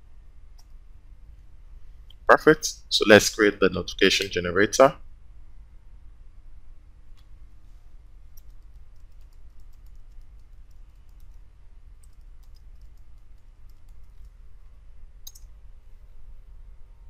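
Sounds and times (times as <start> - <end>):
steady low hum: 0.0 - 17.0
keyboard keys clicking: 8.4 - 11.4, 12.0 - 14.4, 15.3 - 15.5.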